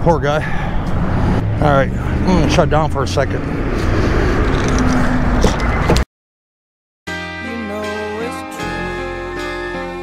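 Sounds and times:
road traffic rumble: 0.0 - 6.0.

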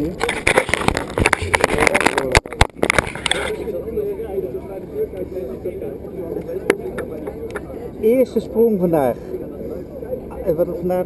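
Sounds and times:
muffled voices: 0.0 - 11.0.

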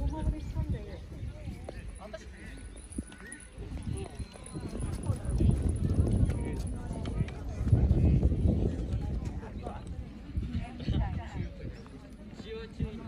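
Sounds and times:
people talking indistinctly: 0.0 - 13.0.

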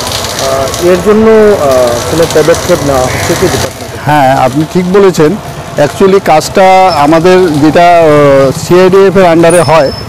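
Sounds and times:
man talking: 0.4 - 10.0.

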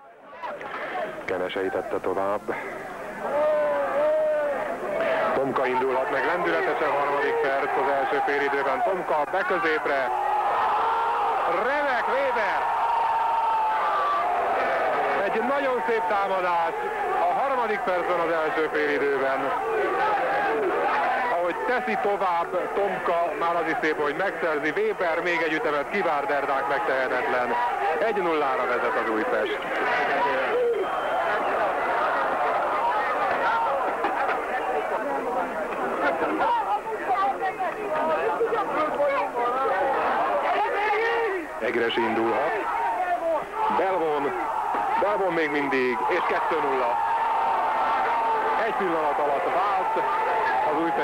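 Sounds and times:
stadium crowd cheering: 2.6 - 51.0.

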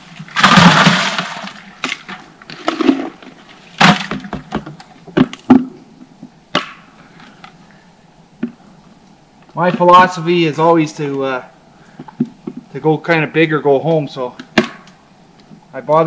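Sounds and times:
plastic pail noisy rush: 0.0 - 1.7.

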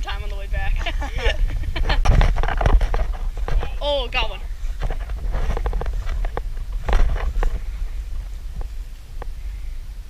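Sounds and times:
wind rumbling on microphone: 0.0 - 10.0
irregular clicks and rustles: 1.2 - 9.4.

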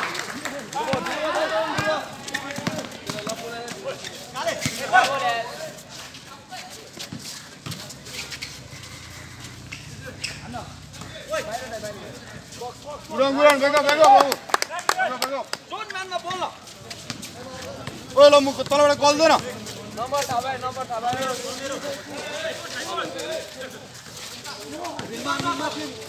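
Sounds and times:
people shouting: 0.7 - 2.3
basketball bouncing on concrete: 1.7 - 3.9.

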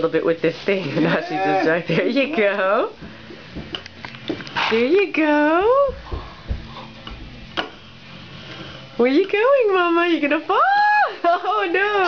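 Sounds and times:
stool legs scraping on wooden floor: 3.0 - 4.9, 6.0 - 7.7.

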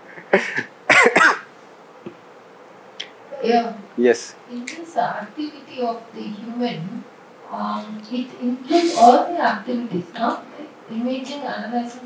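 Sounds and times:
person coughing: 0.2 - 1.5, 8.7 - 9.2.

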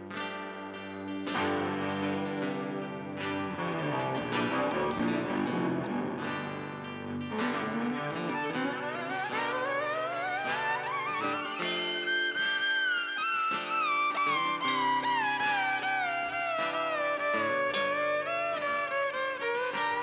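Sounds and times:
acoustic guitar: 0.0 - 20.0
electric guitar sliding lead: 0.0 - 20.0
upright bass: 3.2 - 9.2.

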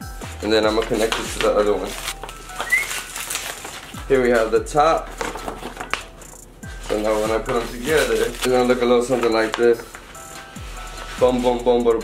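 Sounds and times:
vinyl sheets rustling and crinkling: 0.4 - 12.0.

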